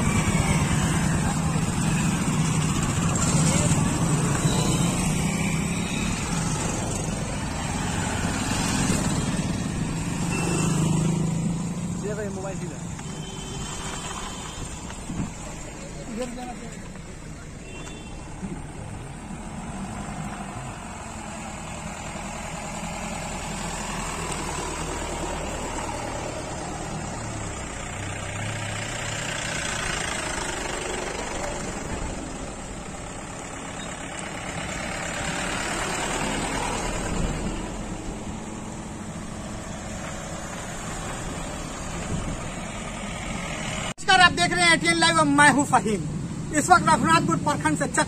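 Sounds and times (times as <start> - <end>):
vehicles driving slowly past: 0.0 - 48.0.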